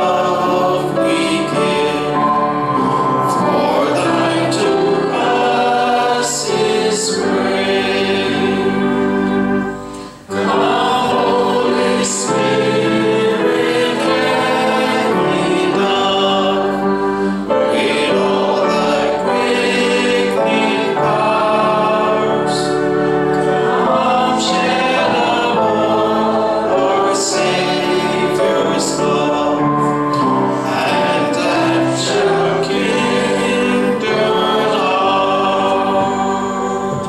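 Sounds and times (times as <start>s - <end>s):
congregation singing a hymn: 0.0s - 37.0s.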